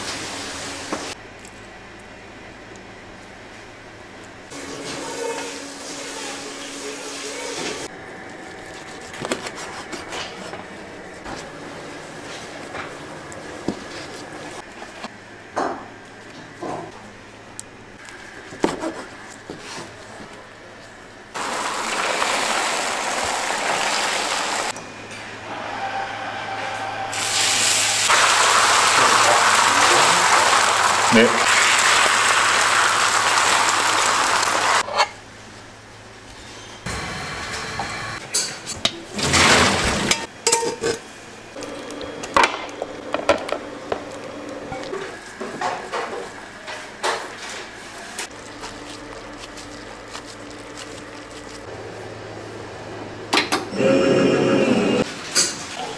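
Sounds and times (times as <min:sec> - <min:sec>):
egg sizzling on a griddle: 0:27.2 - 0:34.8
metal pans and utensils clattering: 0:38.4 - 0:41.0.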